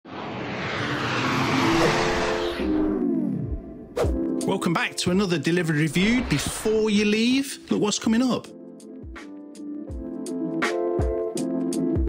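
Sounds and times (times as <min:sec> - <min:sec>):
whoosh sound effect: 0:00.0 - 0:03.8, 0:06.0 - 0:06.8.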